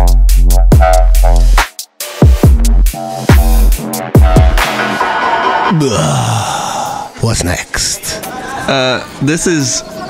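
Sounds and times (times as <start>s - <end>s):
electronic bass music: 0.0s - 5.7s.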